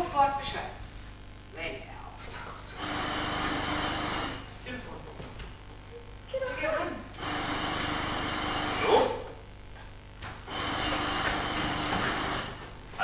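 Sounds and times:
telephone bell ringing: 2.8s - 4.6s, 7.2s - 9.4s, 10.5s - 12.7s
person crying out: 8.8s - 9.3s.

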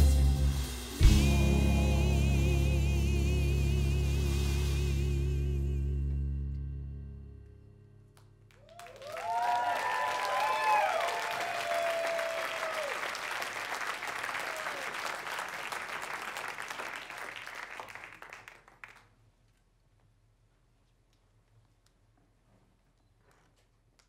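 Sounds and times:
audience applauding: 8.5s - 19.1s
loud whoops: 8.6s - 13.3s, 14.2s - 15.1s.

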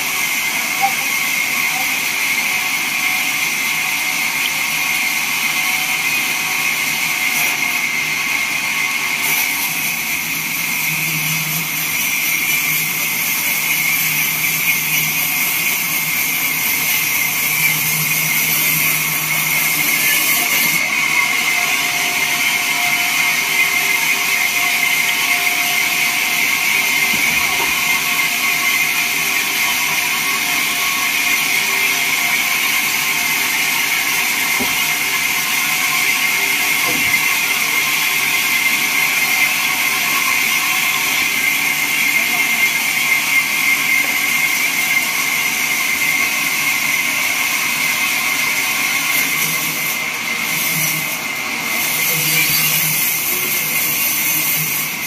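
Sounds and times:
band saw cutting wood: 0.0s - 55.0s.

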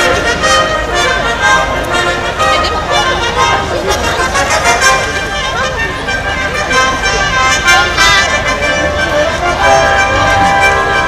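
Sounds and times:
orchestra with brass playing chords: 0.0s - 11.0s
people talking: 0.0s - 11.0s.

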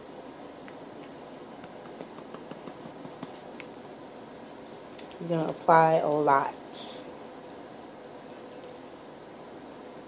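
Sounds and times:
spice jar shaking ticks: 1.6s - 3.4s.

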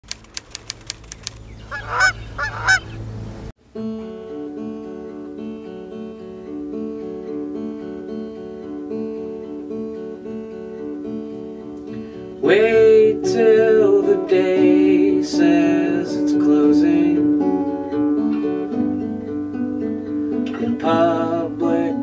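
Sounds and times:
sharp clicks: 0.0s - 1.8s
goose honking: 1.6s - 3.1s
acoustic guitar arpeggios: 3.6s - 22.0s.

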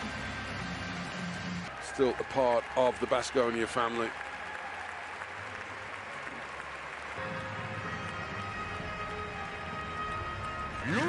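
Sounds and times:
arena crowd applauding: 0.8s - 10.6s.

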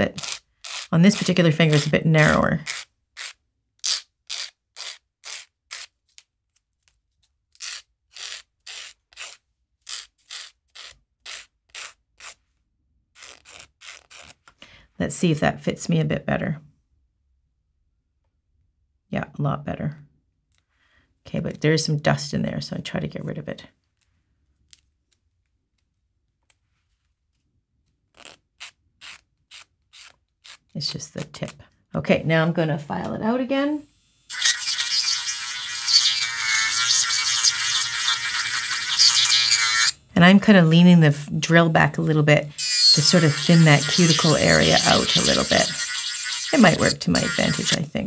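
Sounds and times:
nail file rasping: 0.1s - 5.9s, 7.5s - 12.4s, 13.2s - 14.4s, 28.2s - 30.7s, 34.3s - 40.0s, 42.6s - 48.0s.

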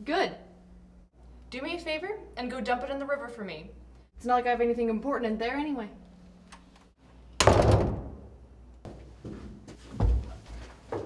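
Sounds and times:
wooden door slamming: 7.4s - 8.3s.

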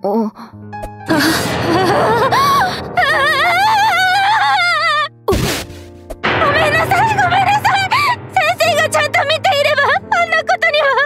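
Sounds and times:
woman gasping and crying: 0.4s - 3.8s.

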